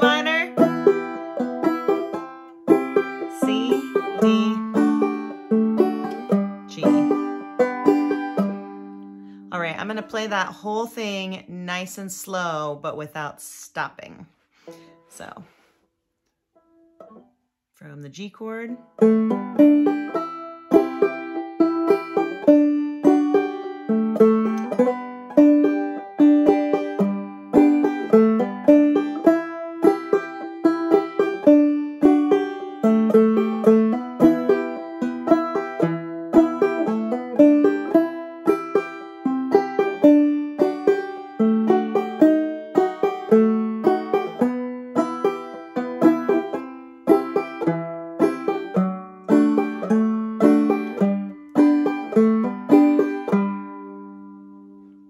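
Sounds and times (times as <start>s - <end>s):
banjo playing: 0.0s - 13.7s, 16.6s - 17.4s, 18.1s - 55.0s.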